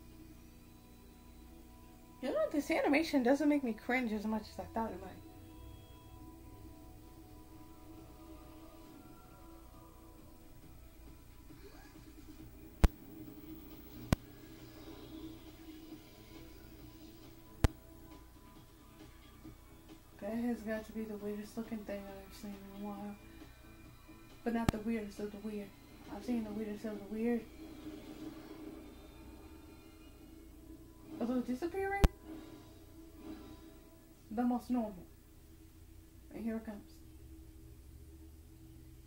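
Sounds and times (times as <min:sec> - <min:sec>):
faint low hum: 0:00.0 - 0:39.0
faint television soundtrack: 0:00.0 - 0:39.0.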